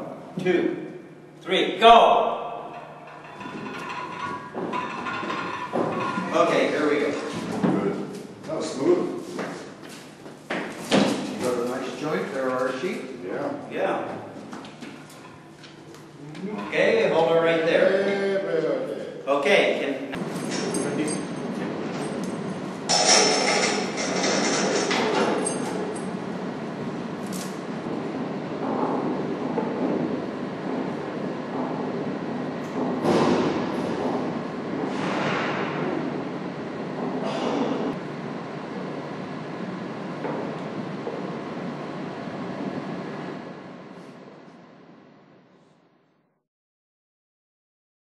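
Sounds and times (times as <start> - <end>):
hoist mechanical rumble: 2.2 - 8.9, 20.1 - 44.5
metal clanks and scrapes: 2.7 - 7.5, 22.9 - 26.1.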